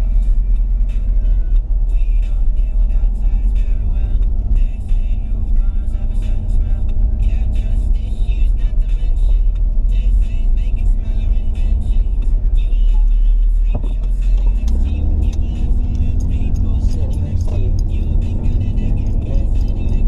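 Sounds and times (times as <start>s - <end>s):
engine and road rumble: 0.0s - 20.0s
music with singing: 0.0s - 20.0s.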